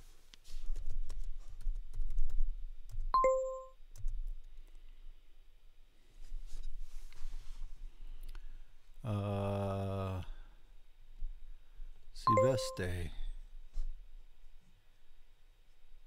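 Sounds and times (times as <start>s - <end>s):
short electronic chime: 12.3s - 13.0s.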